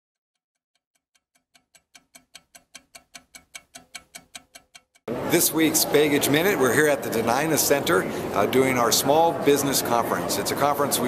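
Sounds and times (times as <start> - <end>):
clock ticking: 0.6 - 5.1.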